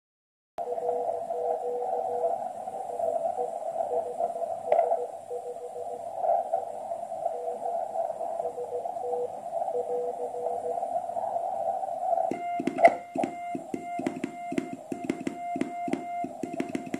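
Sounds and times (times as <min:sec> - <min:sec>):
radio band noise hiss: 0:00.6 - 0:16.9
morse code tone: 0:12.3 - 0:16.9.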